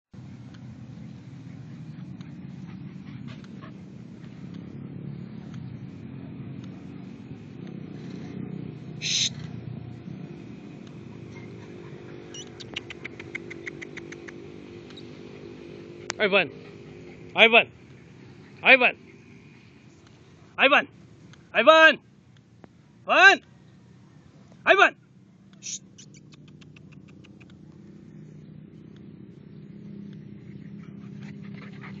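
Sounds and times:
dog panting quickly: 0:02.4 - 0:04.0, 0:15.9 - 0:17.4, 0:30.5 - 0:32.0
puppy yelping: 0:11.0 - 0:17.5, 0:25.6 - 0:27.6.

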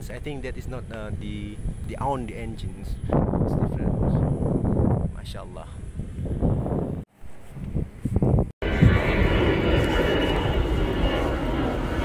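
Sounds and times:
aircraft engine noise: 0:00.0 - 0:12.0
patchy outdoor sound: 0:00.0 - 0:12.0.

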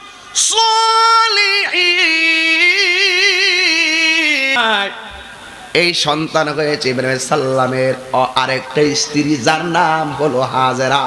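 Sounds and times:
man chanting through microphones: 0:00.0 - 0:11.0.

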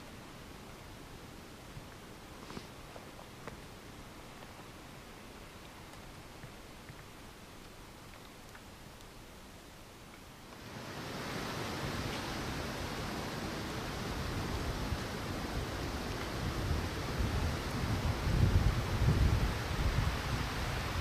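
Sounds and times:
wind rushing hiss: 0:10.6 - 0:21.0
wind buffeting on microphone: 0:11.0 - 0:21.0.

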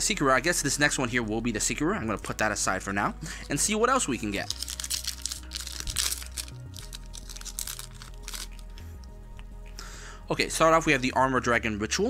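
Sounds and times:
background music: 0:00.0 - 0:12.0
foil wrapper crinkling and tearing: 0:04.3 - 0:08.7.

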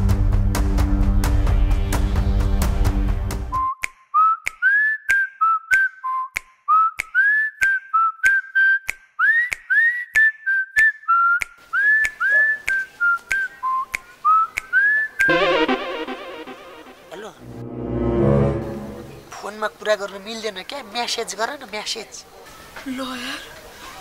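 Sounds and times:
person whistling a tune: 0:03.5 - 0:15.3.

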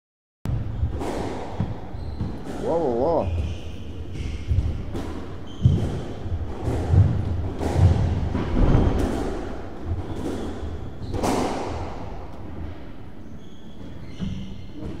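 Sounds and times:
squash ball knocks echoing: 0:00.5 - 0:12.2.

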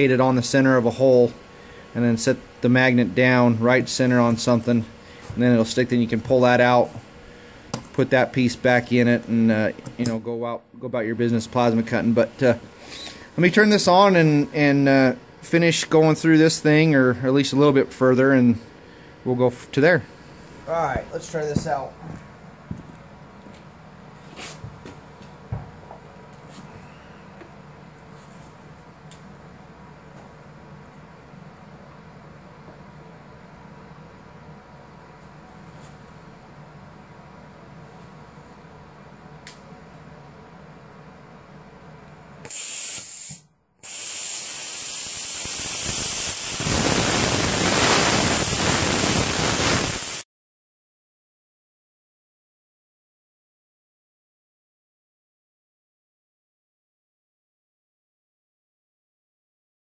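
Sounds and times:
burst of hissing air: 0:42.4 - 0:50.2
plasma cutter humming: 0:42.5 - 0:50.2
torch cutting hiss: 0:42.5 - 0:50.2.

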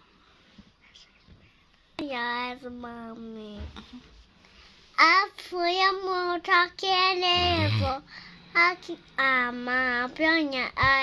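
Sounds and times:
person holding a vocal note: 0:07.4 - 0:08.0.

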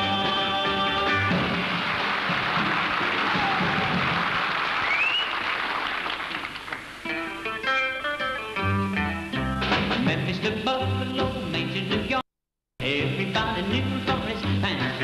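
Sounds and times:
acoustic guitar playing: 0:00.0 - 0:02.7, 0:07.0 - 0:12.2
audience applauding: 0:01.1 - 0:07.2
rising whistle: 0:04.8 - 0:05.4.

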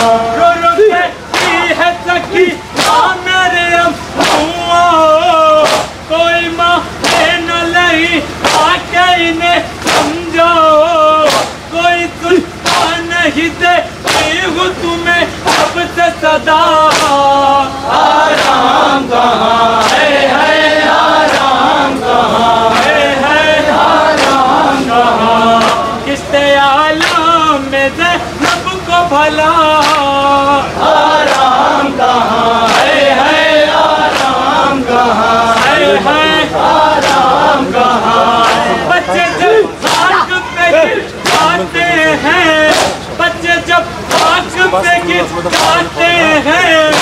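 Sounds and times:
men chanting: 0:00.0 - 0:47.0
hands slapping chests: 0:01.3 - 0:01.6, 0:02.8 - 0:03.1, 0:04.2 - 0:04.5, 0:05.6 - 0:06.0, 0:09.8 - 0:10.2, 0:11.3 - 0:11.6, 0:12.6 - 0:12.9, 0:14.0 - 0:14.4, 0:16.9 - 0:17.2, 0:19.8 - 0:20.0, 0:34.0 - 0:34.5, 0:39.8 - 0:40.1, 0:42.7 - 0:43.0
hands slapping chests in unison: 0:01.3 - 0:01.8, 0:02.8 - 0:03.2, 0:04.2 - 0:06.0, 0:07.0 - 0:07.6, 0:08.4 - 0:08.9, 0:09.8 - 0:10.2, 0:11.2 - 0:11.6, 0:12.6 - 0:13.1, 0:14.0 - 0:14.6, 0:15.4 - 0:15.8, 0:16.9 - 0:19.0, 0:19.7 - 0:25.9, 0:27.0 - 0:27.3, 0:28.4 - 0:28.7, 0:29.8 - 0:30.2, 0:30.8 - 0:38.8, 0:39.8 - 0:40.2, 0:41.1 - 0:41.7, 0:42.6 - 0:43.2, 0:44.1 - 0:44.6, 0:45.5 - 0:46.0, 0:46.8 - 0:47.0.

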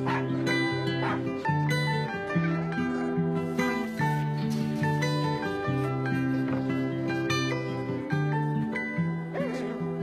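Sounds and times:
puppy barking: 0:00.0 - 0:01.4, 0:09.3 - 0:09.8
gentle plucked string music: 0:00.0 - 0:10.0.

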